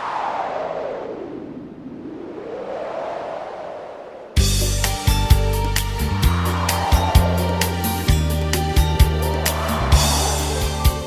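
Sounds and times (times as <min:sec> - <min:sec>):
synthesized whoosh sweep: 0:06.1 - 0:11.0.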